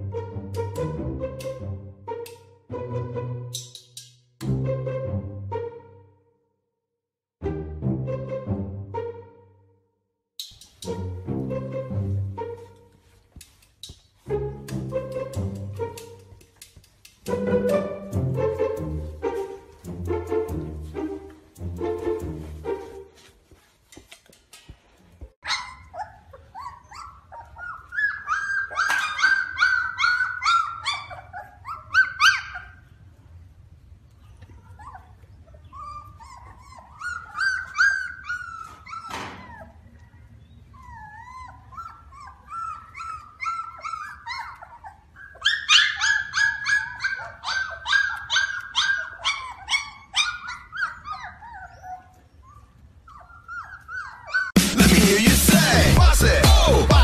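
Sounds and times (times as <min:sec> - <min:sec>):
puppies whining: 0:25.4 - 0:33.0, 0:34.3 - 0:54.6
puppies yipping: 0:25.4 - 0:33.0, 0:34.4 - 0:54.6.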